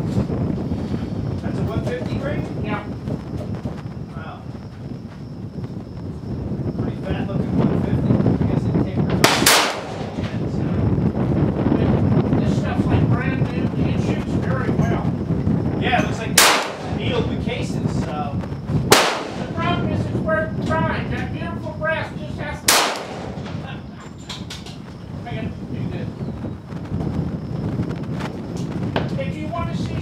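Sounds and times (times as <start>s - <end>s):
wind rumbling on microphone: 0.0s - 30.0s
rifle shots cracking: 9.2s - 10.4s, 16.4s - 17.3s, 18.9s - 19.8s, 22.7s - 23.8s.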